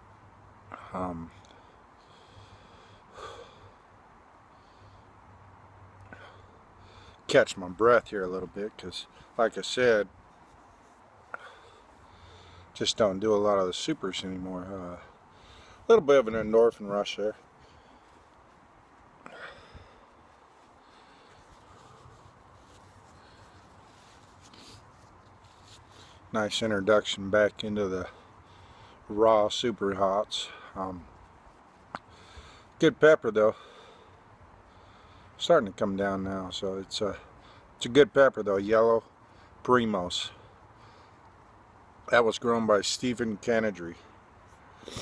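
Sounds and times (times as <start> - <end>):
faint breathing: 0.6 - 7.3, 10.3 - 12.8, 14.9 - 15.9, 17.3 - 26.4, 28.0 - 29.2, 32.0 - 32.8, 33.5 - 35.4, 37.2 - 37.8, 39.1 - 39.6, 40.3 - 41.9
man sniffing and breathing: 17.4 - 26.3, 44.4 - 45.0
wiping nose with tissue: 20.1 - 26.3
man sniffing sharply: 44.6 - 45.0.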